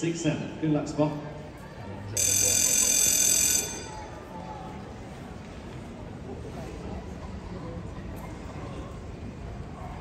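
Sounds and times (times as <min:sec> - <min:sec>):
high-pitched electronic bell ring: 0:02.2 - 0:04.1.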